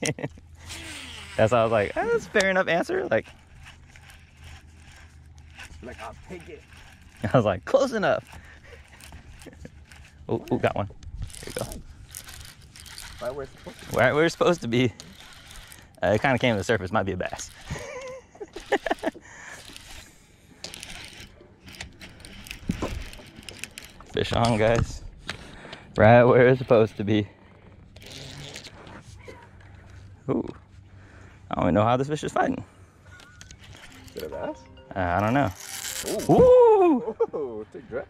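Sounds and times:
fishing reel whirring and clicking: 0.5s - 24.8s, 27.9s - 28.8s, 33.2s - 34.4s, 35.2s - 36.4s
sharp reel click: 35.4s - 36.4s.

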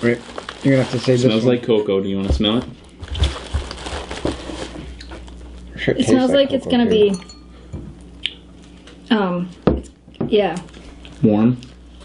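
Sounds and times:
paper packet rustling: 0.0s - 1.6s, 2.4s - 5.6s.

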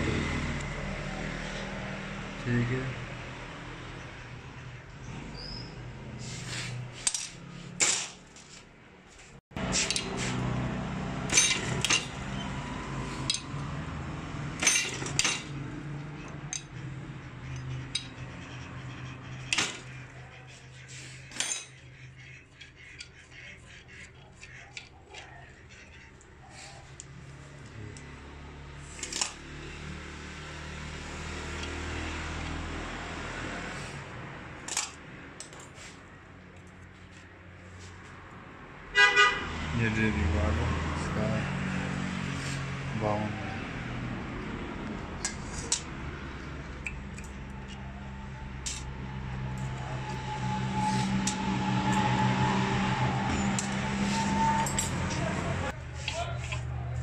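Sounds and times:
metal parts clinking in a bowl: 11.3s - 12.1s, 21.3s - 21.8s, 54.6s - 55.2s.

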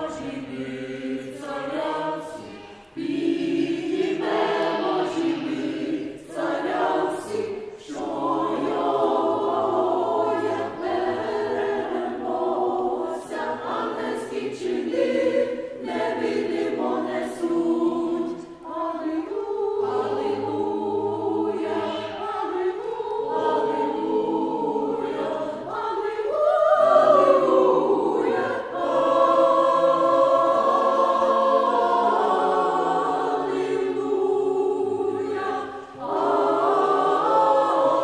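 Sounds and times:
mixed choir singing: 0.0s - 38.0s.

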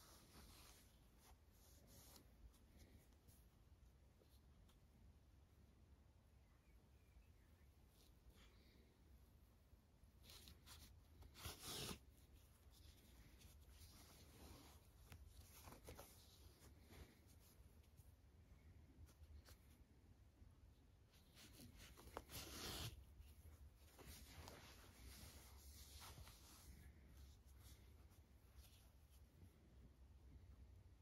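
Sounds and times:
hands handling a stuffed toy: 0.0s - 5.8s, 7.8s - 31.0s
yarn rustling: 7.8s - 20.2s, 20.8s - 29.5s.

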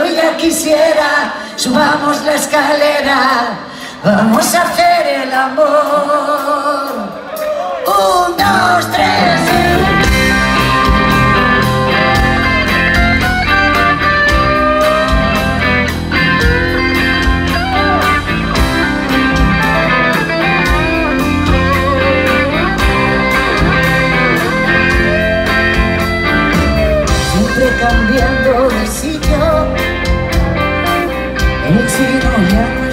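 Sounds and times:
bass guitar: 8.4s - 32.9s
electric guitar lead lines: 8.4s - 32.9s
steady drum beat: 9.3s - 32.6s.

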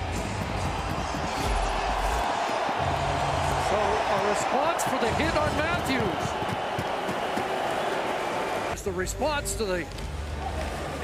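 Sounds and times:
arena crowd din: 0.0s - 8.8s.

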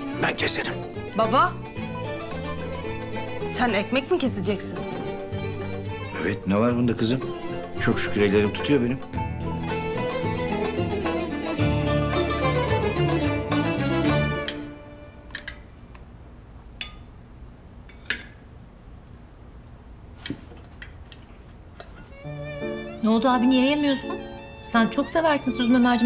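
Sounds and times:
plucked-string music: 0.0s - 15.7s, 22.0s - 26.0s.

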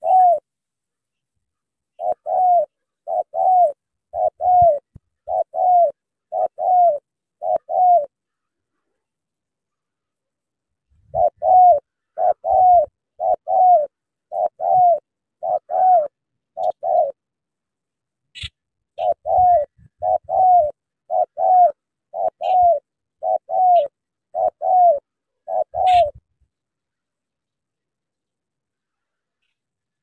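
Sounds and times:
dove cooing: 0.0s - 0.5s, 1.9s - 8.3s, 11.0s - 17.3s, 18.4s - 26.4s.

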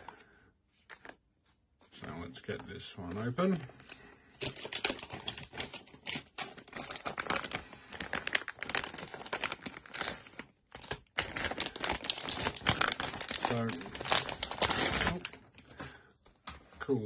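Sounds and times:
plastic bag crinkling: 3.3s - 15.6s.

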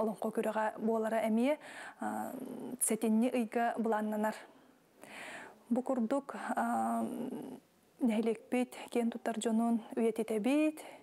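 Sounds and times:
woman talking: 0.0s - 4.5s, 5.7s - 11.0s.

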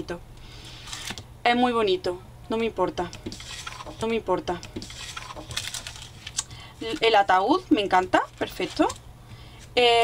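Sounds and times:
paper and plastic packet crinkling: 3.3s - 4.0s, 4.8s - 9.0s.

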